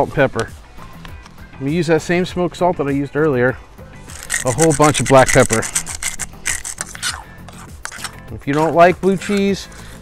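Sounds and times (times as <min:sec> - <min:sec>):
pepper grinder cracking peppercorns: 0:04.0 - 0:10.0.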